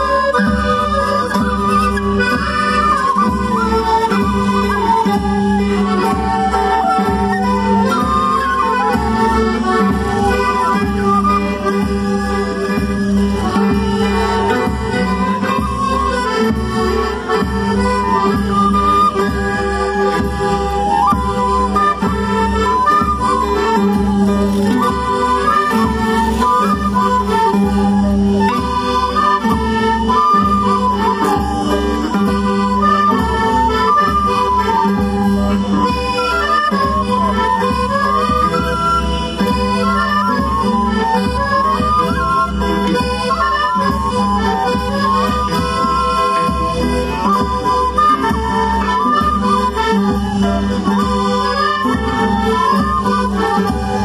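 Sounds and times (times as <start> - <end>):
reedy wind melody: 0.0 - 54.0.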